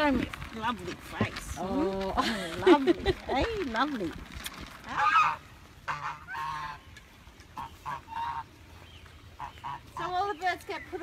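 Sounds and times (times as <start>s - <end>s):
geese honking: 4.9s - 11.0s.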